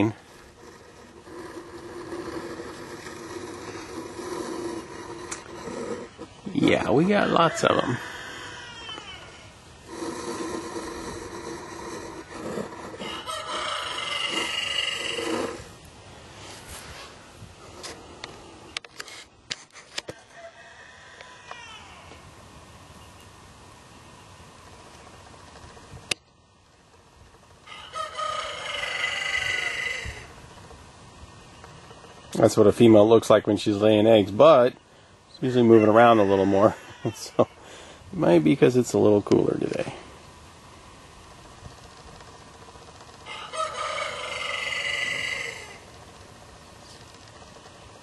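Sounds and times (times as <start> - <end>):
drawn-out animal calls: 0.0 - 15.7.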